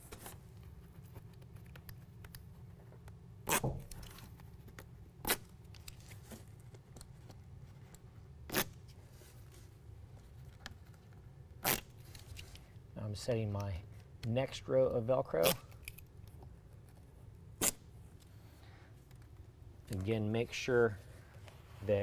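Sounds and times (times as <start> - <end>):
low room hum: 0.0 - 22.0
backing peeled off velcro: 3.4 - 4.3, 5.2 - 6.3, 8.4 - 8.9, 11.6 - 12.5, 17.6 - 17.9.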